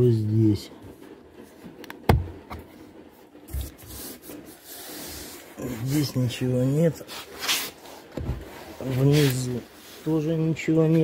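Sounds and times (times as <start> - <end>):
dull thump: 2.1 - 2.4.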